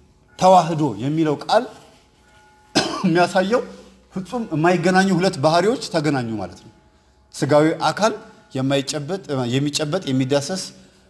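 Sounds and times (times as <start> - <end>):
man speaking: 0.4 - 1.8, 3.0 - 6.7, 7.4 - 10.8.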